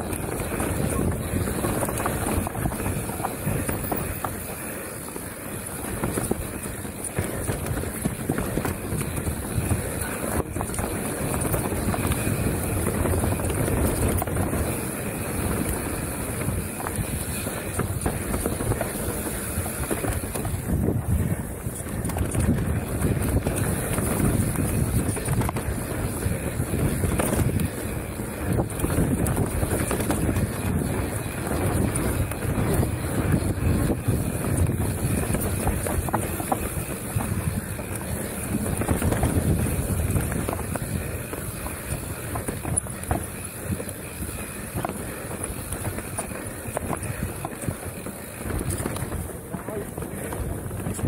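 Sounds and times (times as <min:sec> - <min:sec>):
bike knocks and rattles: 0:00.0 - 0:51.0
tyres rumbling on dirt: 0:00.0 - 0:51.0
wind rushing over microphone: 0:00.0 - 0:51.0.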